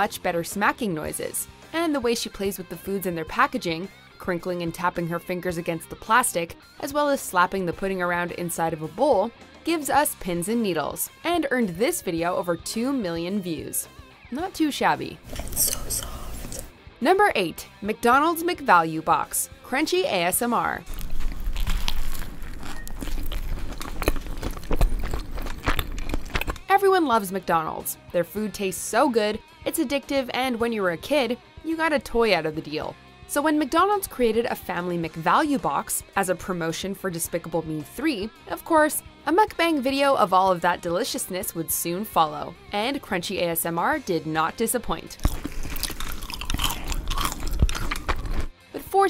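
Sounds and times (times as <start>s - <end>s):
hamburger being bitten and chewed: 15.2s - 16.7s, 20.8s - 26.7s, 45.1s - 48.6s
mouth clicks: 15.3s - 16.7s, 45.2s - 48.5s.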